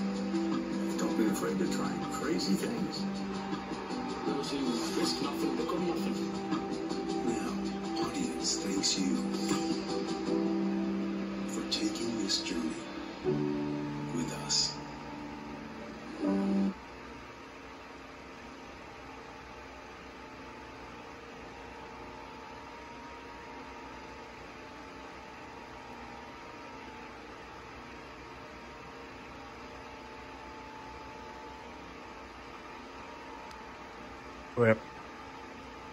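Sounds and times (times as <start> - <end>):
faint steady tones: 0.0 - 35.9
room hum and hiss: 0.0 - 35.9.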